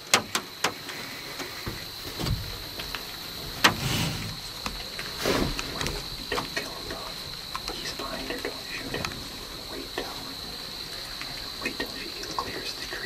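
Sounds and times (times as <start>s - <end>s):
faint high whine: 0.0s - 13.0s
soft rustles: 0.8s - 11.6s.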